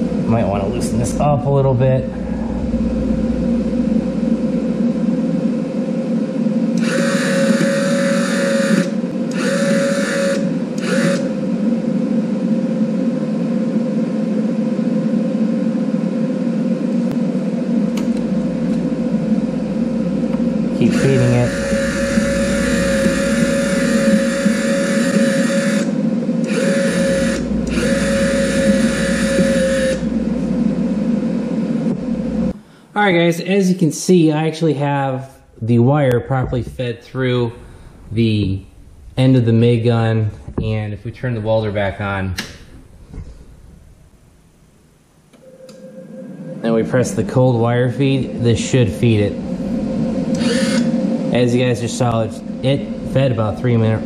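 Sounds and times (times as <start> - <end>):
welder humming: 0.0 - 13.0, 14.5 - 32.8, 45.3 - 54.0
wire feed motor whirring: 6.7 - 11.5, 17.8 - 32.6, 49.1 - 53.9.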